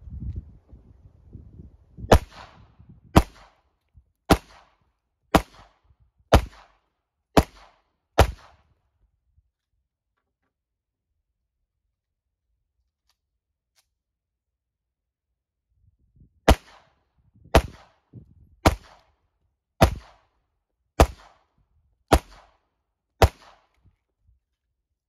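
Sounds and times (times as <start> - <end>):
pistol shots: 2.1 - 3.6, 4.3 - 6.8, 7.4 - 8.6, 16.5 - 18.0, 18.6 - 19.1, 19.8 - 20.3, 21.0 - 21.5, 22.1 - 22.6, 23.2 - 23.8.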